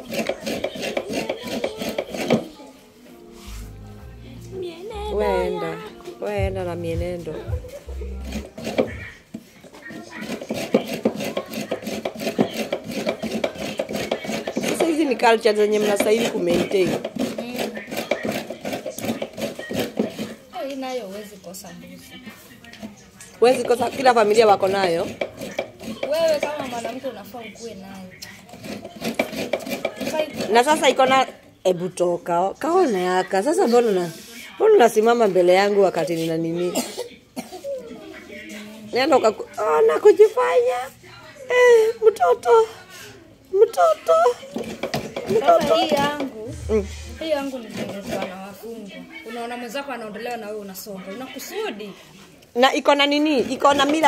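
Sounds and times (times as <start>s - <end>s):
coconut rasping on hand grater: 0.0s - 2.5s, 8.2s - 20.5s, 23.4s - 27.1s, 28.4s - 31.1s, 44.4s - 46.3s, 53.3s - 54.0s.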